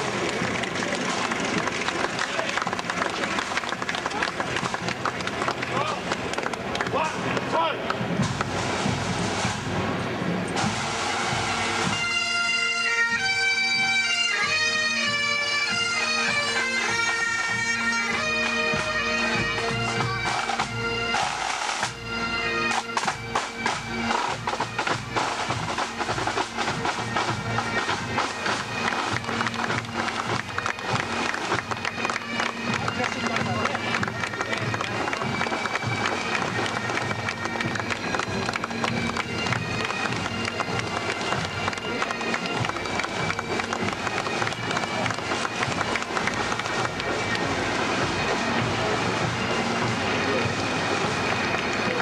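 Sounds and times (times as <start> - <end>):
bagpipes with drone: 0.0 - 52.0
crowd voices: 0.0 - 52.0
rapid snare-drum strokes: 8.2 - 9.8, 10.5 - 12.0, 19.9 - 22.0, 22.7 - 31.6.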